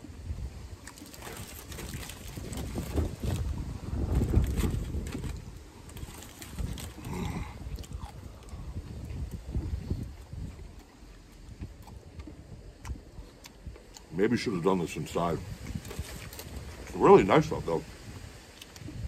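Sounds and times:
wind buffeting microphone: 0.0s - 19.0s
person chewing food: 6.0s - 14.1s.

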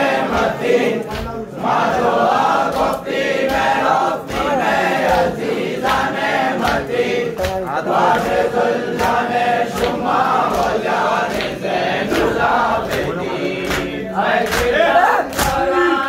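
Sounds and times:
men chanting in unison: 0.0s - 16.0s
sharp rhythmic beats: 0.0s - 16.0s.

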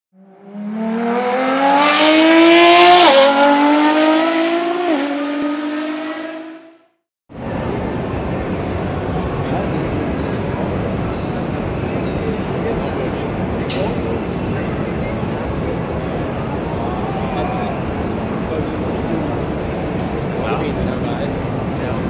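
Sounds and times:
car engine revving: 0.2s - 7.0s
crowd hubbub in a hall: 7.3s - 22.0s.

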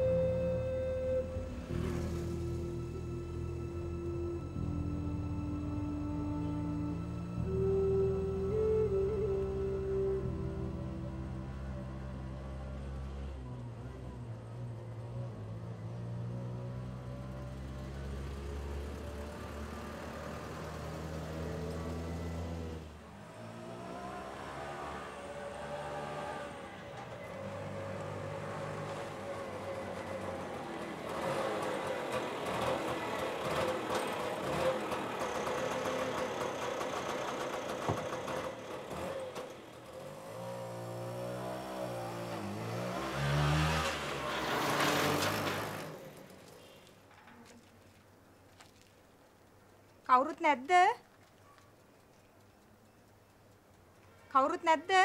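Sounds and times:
auto-rickshaw engine revving: 0.0s - 46.9s.

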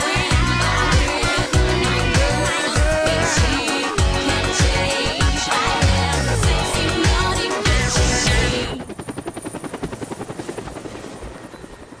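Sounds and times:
song music: 0.0s - 8.7s
helicopter rotor chopping: 0.0s - 12.0s.

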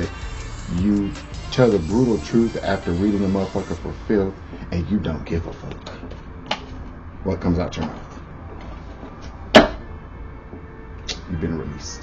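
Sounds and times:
low steady hum: 0.0s - 12.0s
sharp smack: 9.6s - 9.8s.

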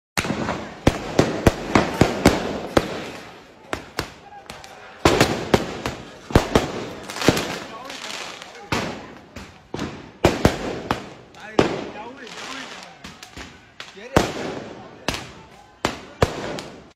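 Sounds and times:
people shouting: 1.7s - 9.1s.

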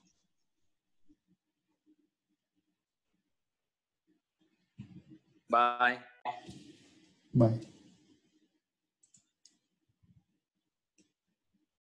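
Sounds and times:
faint clicks: 9.0s - 9.6s.

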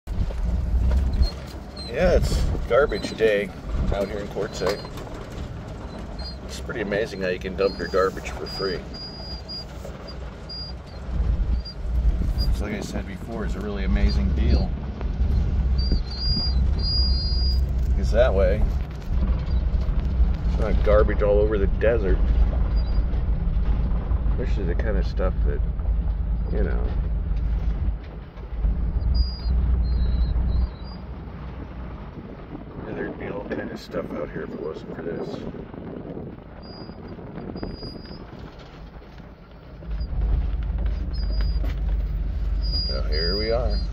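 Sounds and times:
vehicle driving on dirt road: 0.0s - 43.9s
faint high squeaks: 1.0s - 14.7s, 15.8s - 18.4s, 29.0s - 31.1s, 36.6s - 43.9s.

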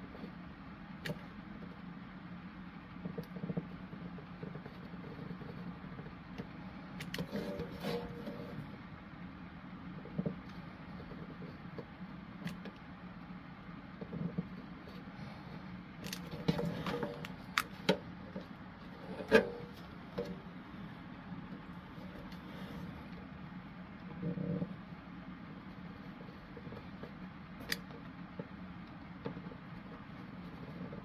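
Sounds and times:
low background hum: 0.0s - 31.0s.

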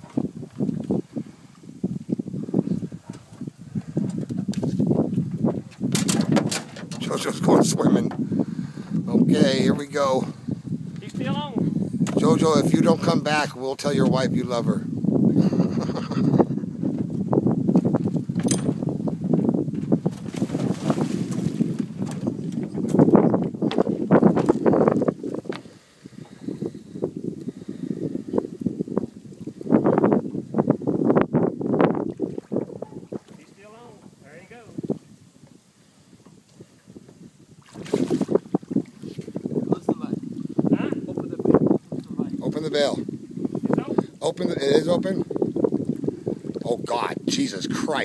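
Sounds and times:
water splashing and sloshing: 0.0s - 9.0s, 16.7s - 35.6s, 36.2s - 42.4s
wind rumbling on microphone: 0.0s - 48.0s.

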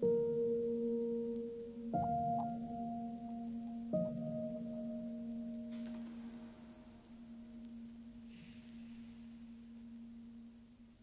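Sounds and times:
slow ambient piano music: 0.0s - 11.0s.

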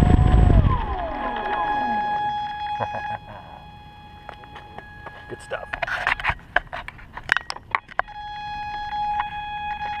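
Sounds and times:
steady motor whine: 0.0s - 10.0s.

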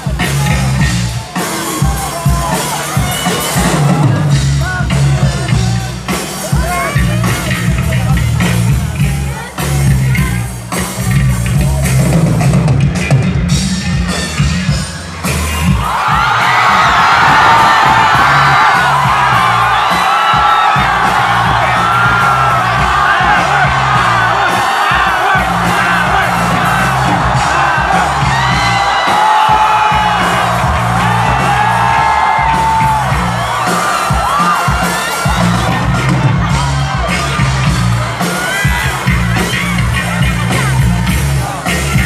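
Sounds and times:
crowd screaming and cheering: 0.0s - 42.0s
live band music: 0.0s - 42.0s
pulsing bass line: 6.6s - 34.4s, 35.3s - 42.0s.

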